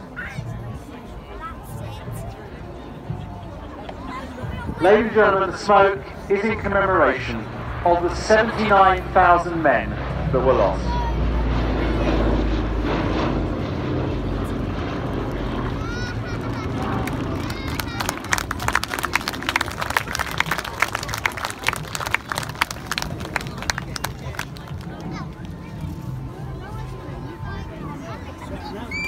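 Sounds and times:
aircraft engines droning overhead: 0.0 - 29.0
sharp claps: 16.4 - 25.6.

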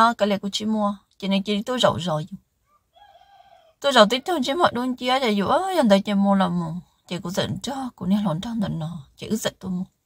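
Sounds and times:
woman narrating: 0.0 - 2.4, 3.8 - 10.0
rooster crowing faintly: 2.6 - 4.5.

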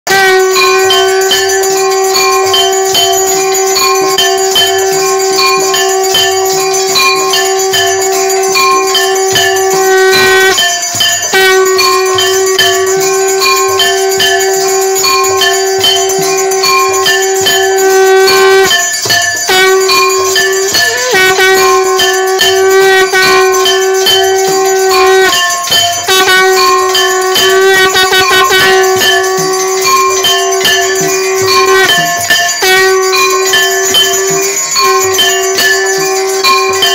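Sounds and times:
long held horn-like tone: 0.1 - 3.0, 9.1 - 10.6, 11.3 - 15.8, 16.4 - 18.8, 19.5 - 25.4, 26.1 - 30.1, 31.0 - 32.0, 32.6 - 33.5
bells ringing rhythmically: 0.1 - 36.9.

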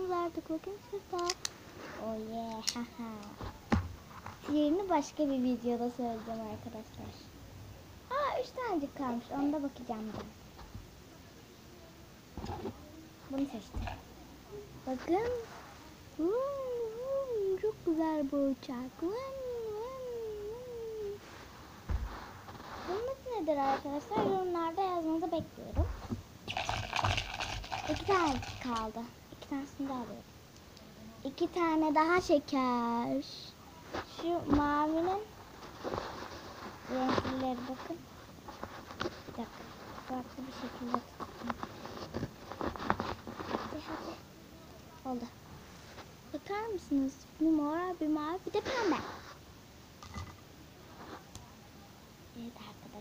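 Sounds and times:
plastic toy pieces clicking: 26.5 - 28.8
packaging rustling: 26.5 - 28.9.

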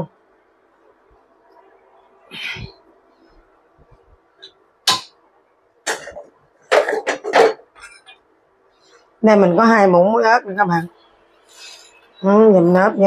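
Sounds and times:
bowls and utensils clattering: 5.9 - 8.2.

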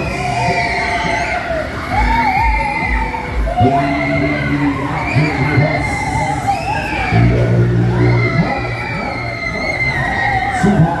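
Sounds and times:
fairground ride music with deep bass: 0.0 - 11.0
riders shouting and cheering: 0.0 - 11.0.

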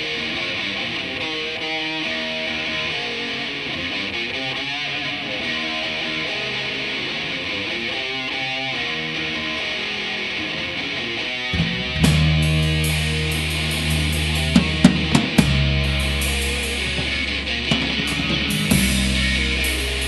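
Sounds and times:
electric guitar: 0.0 - 20.0
live rock band playing: 0.0 - 20.0.

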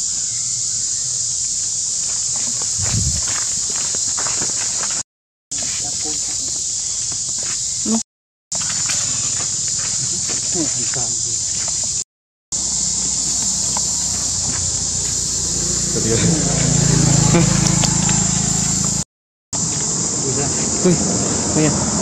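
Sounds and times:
high-pitched insect drone: 0.0 - 5.0, 5.6 - 8.0, 8.6 - 12.0, 12.6 - 19.0
rustling in dry leaves: 0.2 - 5.0, 5.6 - 8.0, 8.6 - 12.0, 12.6 - 15.9.

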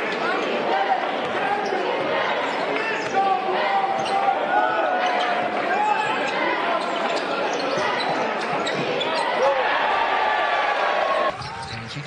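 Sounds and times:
crowd noise: 0.0 - 12.0
sneakers squeaking on court: 3.9 - 4.3, 5.0 - 9.4, 11.3 - 12.0.

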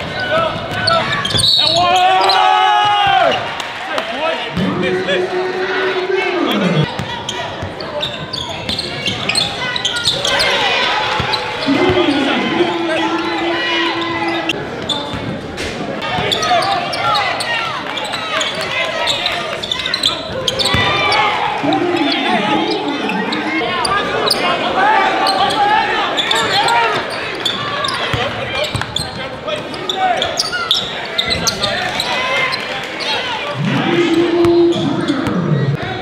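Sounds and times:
crowd and player voices: 0.0 - 36.0
sneakers squeaking on floor: 0.2 - 2.5, 6.5 - 12.3, 13.2 - 24.5, 25.2 - 33.4
basketball bouncing on court: 18.4 - 21.2.

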